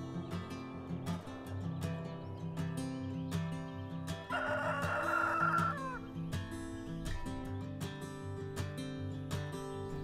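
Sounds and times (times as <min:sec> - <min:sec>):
acoustic guitar music: 0:00.0 - 0:10.0
rooster crowing: 0:04.3 - 0:06.1.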